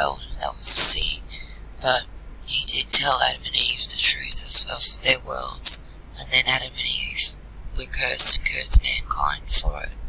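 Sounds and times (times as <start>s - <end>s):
person reading softly: 0.0s - 10.0s.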